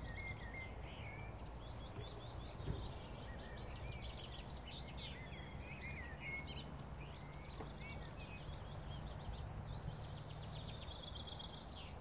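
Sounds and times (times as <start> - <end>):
small birds chirping and trilling: 0.0 - 12.0.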